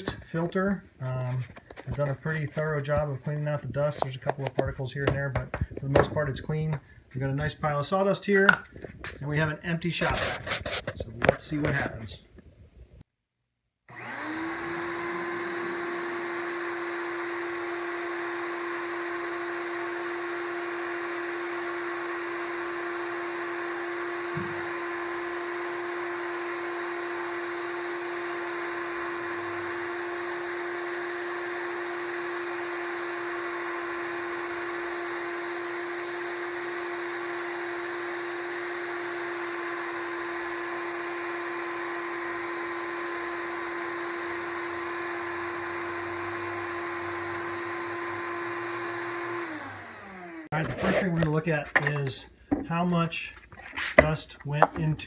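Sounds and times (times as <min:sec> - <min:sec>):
shop vac motor whine: 0:00.0 - 0:12.4, 0:13.9 - 0:52.7
sawdust sucked up hose: 0:13.9 - 0:52.8.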